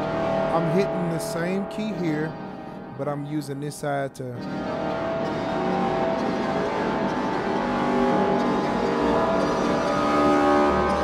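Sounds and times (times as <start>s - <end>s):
sustained synth notes: 0.0s - 3.5s, 4.3s - 11.0s.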